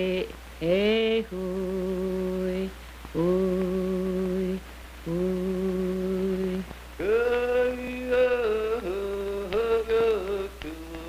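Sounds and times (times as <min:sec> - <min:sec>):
wordless singing voice: 0:00.0 - 0:11.0.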